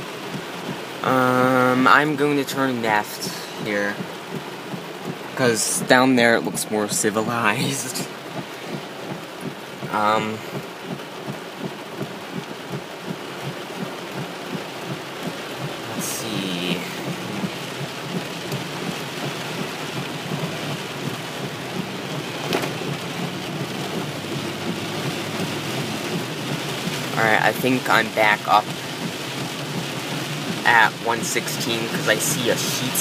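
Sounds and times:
heavy rain on car roof: 0.0s - 33.0s.

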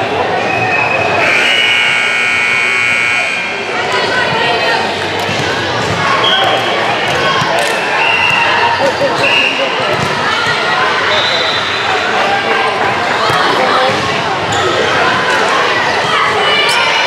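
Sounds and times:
crowd and player chatter: 0.0s - 17.0s
referee whistle blasts: 0.6s - 3.7s
long shrill tone: 1.2s - 3.8s
volleyballs smacking and bouncing: 3.9s - 8.5s, 9.9s - 10.6s.

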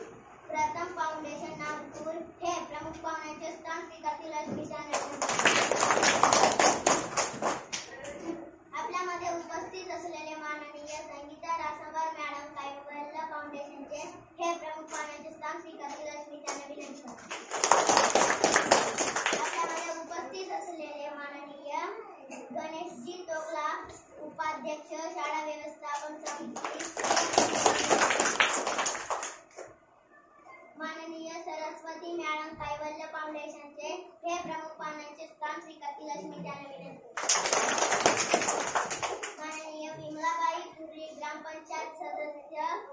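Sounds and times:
group applauding: 4.9s - 8.2s, 16.5s - 20.0s, 26.0s - 29.7s, 37.1s - 39.6s.

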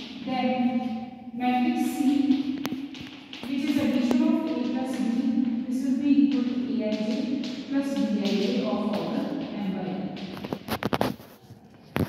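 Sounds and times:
classroom voices: 3.4s - 10.3s.

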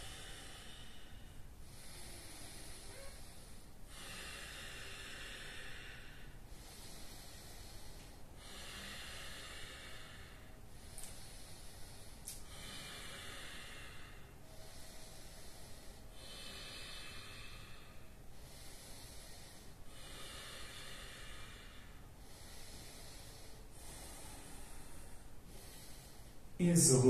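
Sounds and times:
person breathing deeply: 0.0s - 27.0s.

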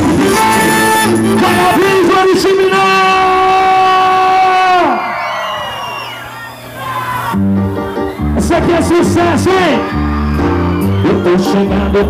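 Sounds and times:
live band sustained note: 0.0s - 4.7s, 6.9s - 12.0s
crowd cheering and whooping: 3.2s - 12.0s.

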